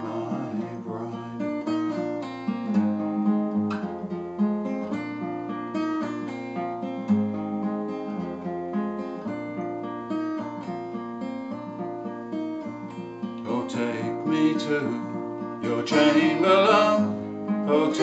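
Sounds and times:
acoustic guitar picking: 0:00.0 - 0:18.0.

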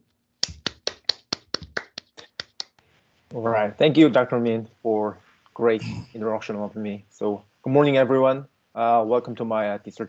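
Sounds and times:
hand clapping: 0:00.4 - 0:02.8.

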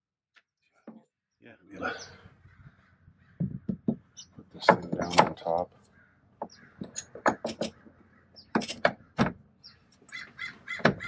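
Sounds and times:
metallic clicks and knocks: 0:04.6 - 0:05.6, 0:06.4 - 0:09.4.

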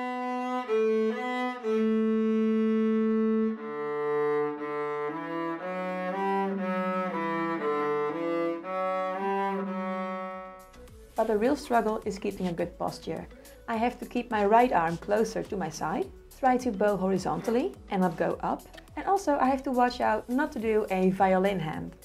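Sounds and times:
bowed cello melody: 0:00.0 - 0:21.1.

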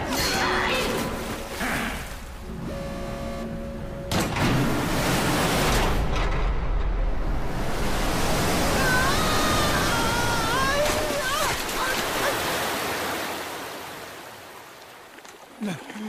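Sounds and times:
water rushing with deep rumble: 0:00.0 - 0:16.0.

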